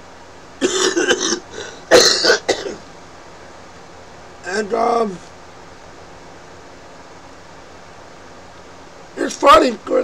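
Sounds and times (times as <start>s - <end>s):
man coughing: 0.6s - 2.8s.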